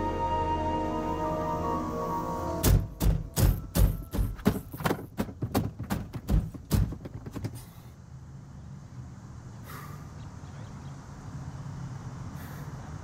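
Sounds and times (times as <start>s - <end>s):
held music chord: 0.0s - 4.0s
dull thumps: 2.6s - 7.8s.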